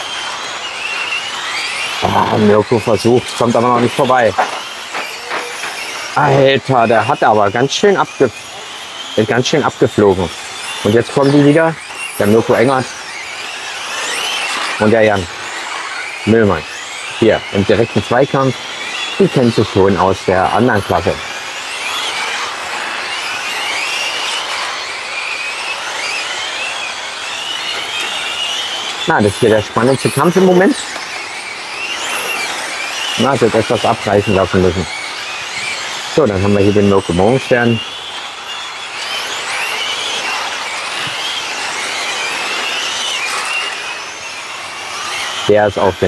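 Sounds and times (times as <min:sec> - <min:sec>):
rc cars whining: 0:00.0 - 0:46.0.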